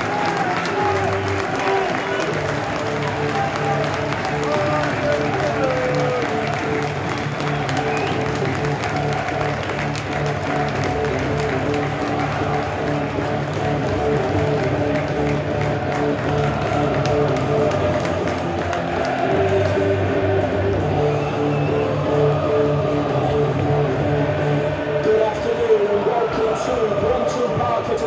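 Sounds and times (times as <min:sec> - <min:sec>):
crowd applauding and cheering: 0:00.0 - 0:28.0
music over pa system: 0:00.0 - 0:28.0.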